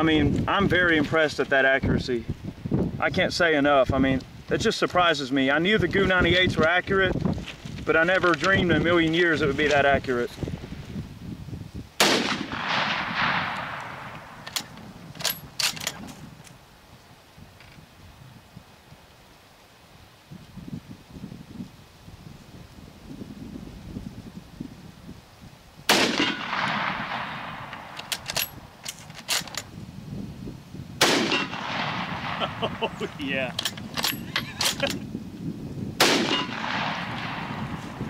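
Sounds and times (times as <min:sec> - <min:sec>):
rifle shots echoing: 0:12.0 - 0:14.6, 0:25.9 - 0:28.5, 0:31.0 - 0:33.2, 0:36.0 - 0:37.9
rifle bolt clicks: 0:12.2 - 0:16.6, 0:26.0 - 0:29.7, 0:33.5 - 0:35.0.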